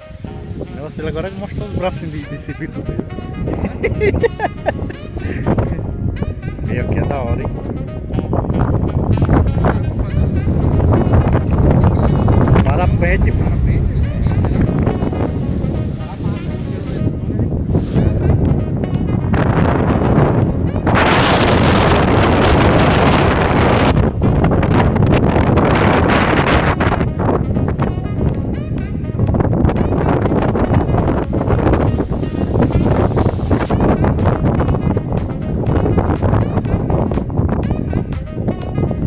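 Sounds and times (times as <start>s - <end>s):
low rumble: 0.0s - 39.0s
wind buffeting microphone: 0.0s - 39.0s.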